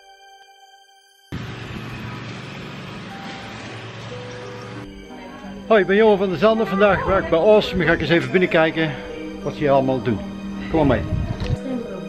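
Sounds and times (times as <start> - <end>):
soft music: 0.0 - 12.0
wind rushing on microphone: 10.7 - 11.6.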